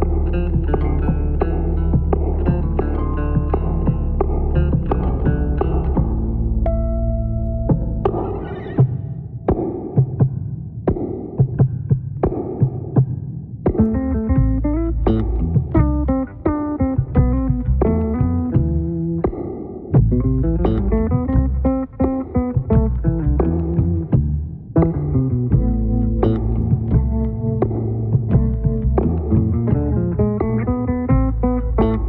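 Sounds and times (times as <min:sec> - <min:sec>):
bass guitar instrumental: 0:00.0 - 0:09.7, 0:13.8 - 0:32.0.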